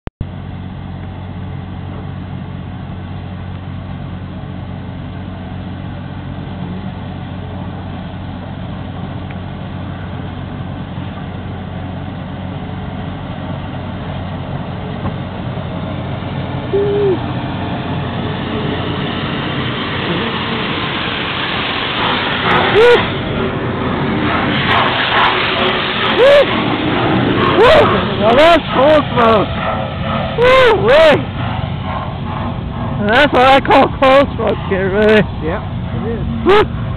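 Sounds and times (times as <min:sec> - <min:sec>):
steady low hum: 0:00.2 - 0:36.9
train rumble and hiss: 0:00.3 - 0:36.9.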